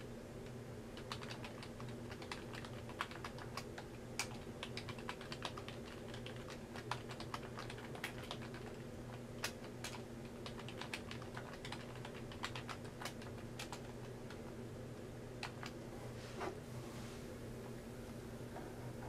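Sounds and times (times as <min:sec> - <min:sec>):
steady low hum: 0:00.0 - 0:19.0
keyboard typing clicks: 0:01.0 - 0:03.6, 0:04.2 - 0:08.8.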